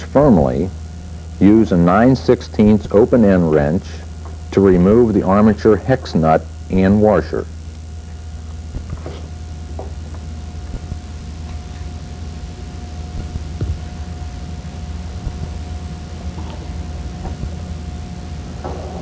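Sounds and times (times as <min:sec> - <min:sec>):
thin steady tone: 0:00.0 - 0:18.9
low electrical hum: 0:00.0 - 0:19.0.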